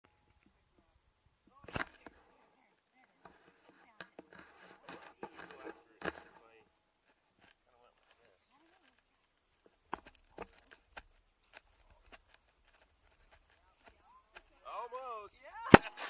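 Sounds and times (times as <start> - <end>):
distant voices talking: 0.4 - 16.0.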